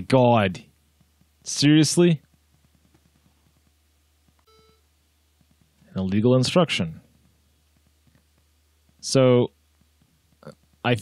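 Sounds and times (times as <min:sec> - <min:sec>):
short computer alert beep: 0:04.5 - 0:04.8.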